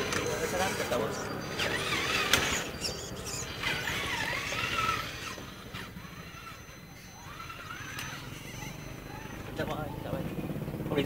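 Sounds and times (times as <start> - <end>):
rc truck motor whining: 0.0 - 10.4.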